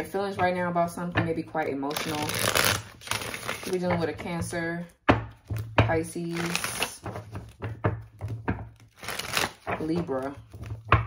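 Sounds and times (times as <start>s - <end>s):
cards being shuffled: 1.9s - 4.0s, 6.2s - 7.8s, 8.8s - 11.0s.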